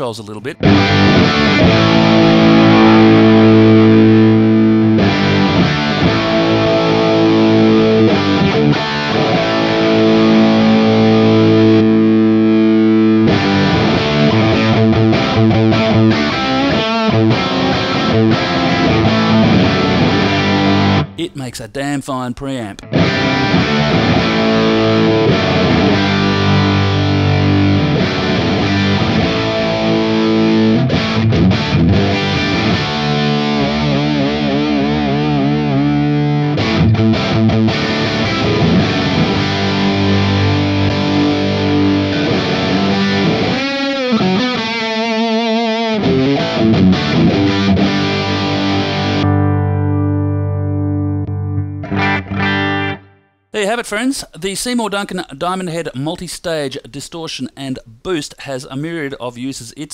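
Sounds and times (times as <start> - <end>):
distorted electric guitar: 0.0 - 21.3, 22.8 - 53.2.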